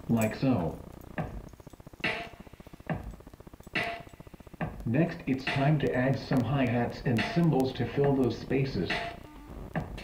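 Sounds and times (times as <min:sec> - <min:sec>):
electronic kick and snare: 0:04.6 - 0:06.4, 0:07.2 - 0:08.2.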